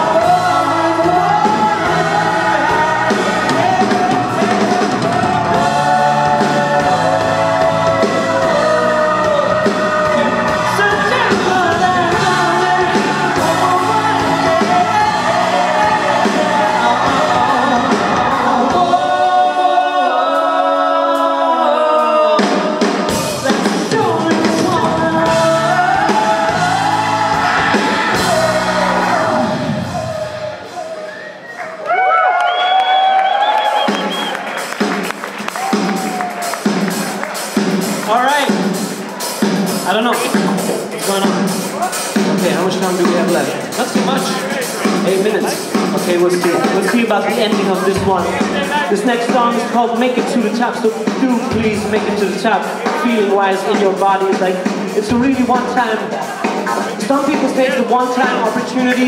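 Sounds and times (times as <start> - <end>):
electric bass: 0.0 - 19.9, 23.1 - 30.6
male lead vocal: 0.0 - 31.0, 39.8 - 59.0
drum kit: 0.0 - 31.8, 32.7 - 59.0.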